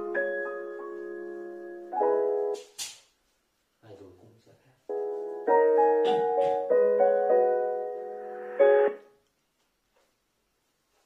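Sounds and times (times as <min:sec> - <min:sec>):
piano chords: 0:00.0 - 0:02.6, 0:04.9 - 0:09.2.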